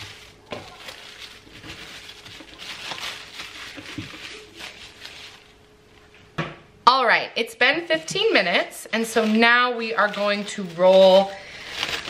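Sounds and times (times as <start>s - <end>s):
plastic wrap crinkling: 0.0s - 6.1s, 7.9s - 12.0s.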